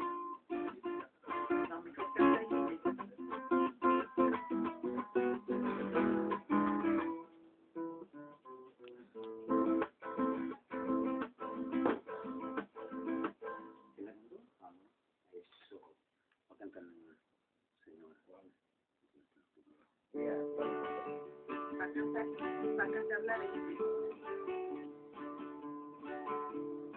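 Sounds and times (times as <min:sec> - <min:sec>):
acoustic guitar: 0:00.0 - 0:14.4, 0:19.7 - 0:26.9.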